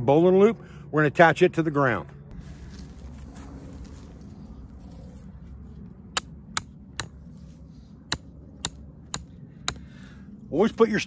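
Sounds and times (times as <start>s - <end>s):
hatchet tapping tent stake: 6.2s - 7.2s, 8.1s - 9.9s.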